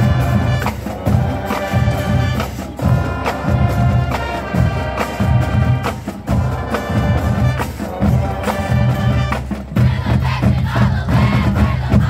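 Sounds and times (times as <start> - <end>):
crowd chanting and shouting: 0.0 - 12.0
marching band drums: 0.0 - 12.0.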